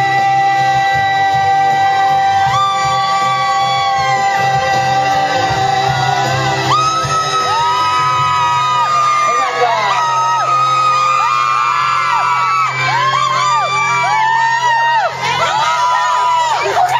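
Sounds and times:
man singing ballad with vibrato: 0.0s - 8.4s
amplified backing track: 0.0s - 16.9s
crowd calls and whoops: 0.0s - 16.9s.

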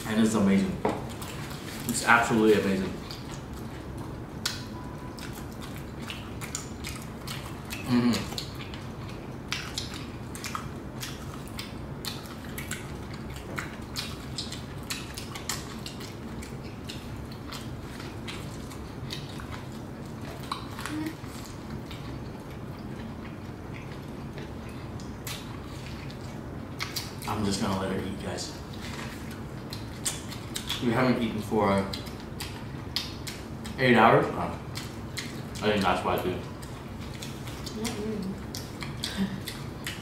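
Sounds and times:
steady low hum: 0.0s - 40.0s.

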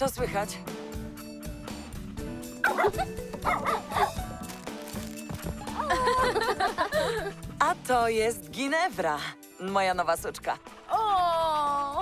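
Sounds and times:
background music: 0.0s - 12.0s
cartoon puppy yipping and whimpering: 2.6s - 4.4s.

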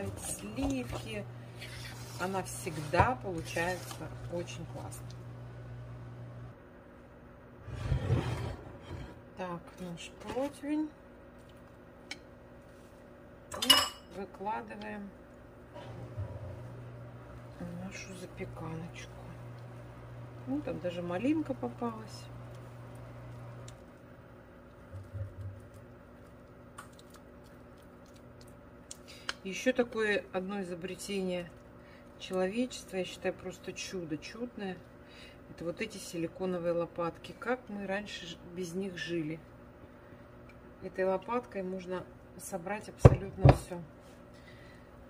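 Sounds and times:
spatula scraping a bowl: 0.0s - 4.1s
low steady hum: 0.0s - 45.0s
glass dish scraping across counter: 7.7s - 9.2s.

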